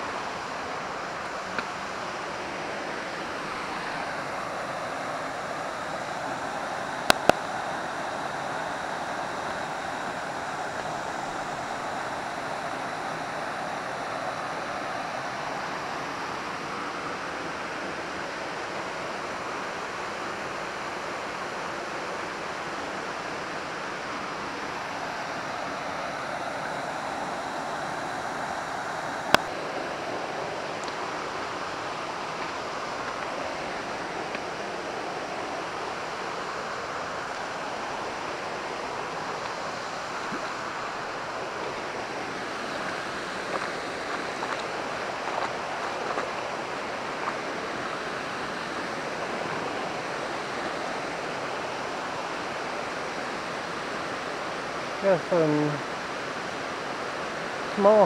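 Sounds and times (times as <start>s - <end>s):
water rushing in rocky creek: 0.0s - 58.0s.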